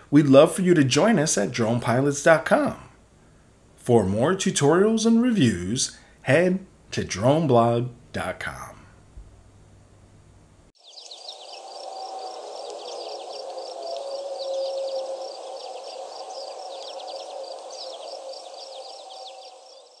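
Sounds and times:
high chirping: 10.8 - 20.0.

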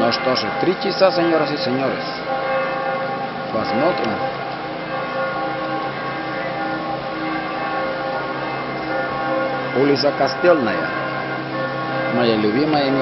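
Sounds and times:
church bells ringing: 0.0 - 13.0.

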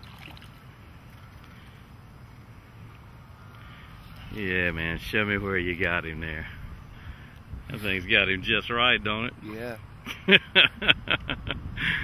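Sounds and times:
faint low outdoor rumble: 0.0 - 12.0.

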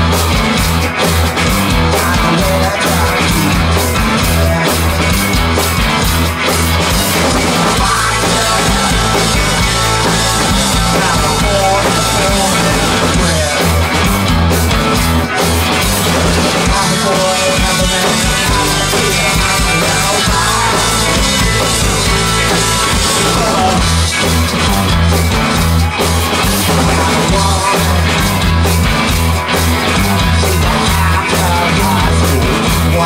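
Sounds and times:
drum kit: 0.0 - 33.0
electric guitars: 0.0 - 33.0
singer on vocals: 1.8 - 5.1, 7.7 - 9.5, 16.6 - 21.2, 30.2 - 33.0.

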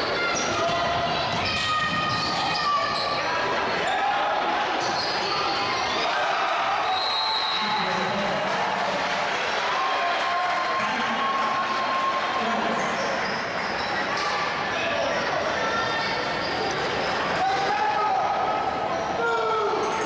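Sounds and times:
crowd and player voices shouting: 0.0 - 20.0.

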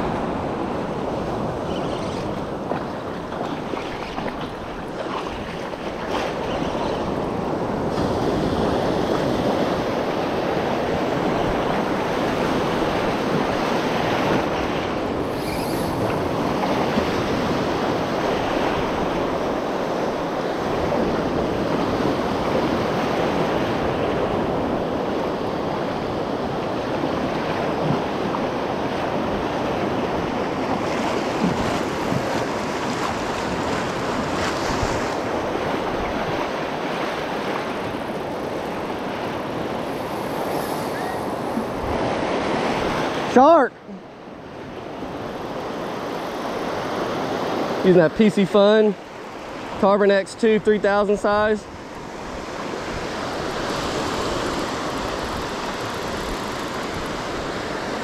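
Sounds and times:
surf breaking in shallows: 0.0 - 43.6, 44.2 - 58.0
wind buffeting microphone: 51.4 - 58.0.

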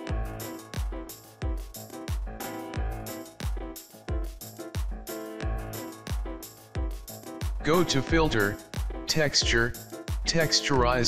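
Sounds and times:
held keyboard chords: 0.0 - 11.0.

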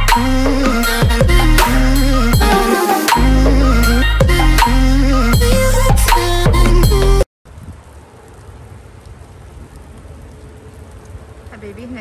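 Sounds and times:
background music: 0.0 - 7.2.

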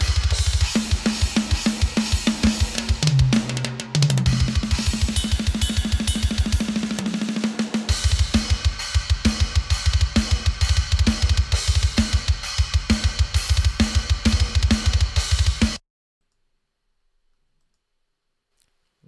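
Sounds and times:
cymbals: 4.2 - 13.2.

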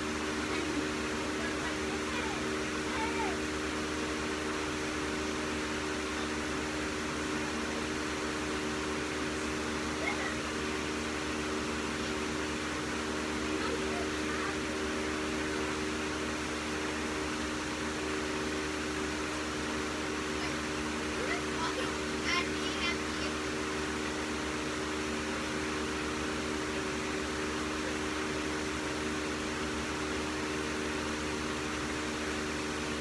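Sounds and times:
machine hum: 0.0 - 33.0.

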